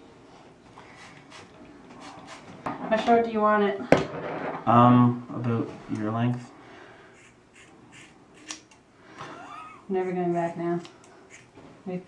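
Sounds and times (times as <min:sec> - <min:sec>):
scissors snipping hair: 0:07.6 - 0:08.8, 0:10.0 - 0:11.5
sharp scissors click: 0:08.4 - 0:08.7.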